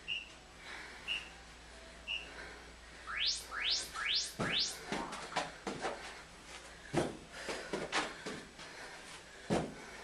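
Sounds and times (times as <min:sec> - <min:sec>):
short high beep: 0:03.1 - 0:05.0
rising chirp tones: 0:03.1 - 0:05.4.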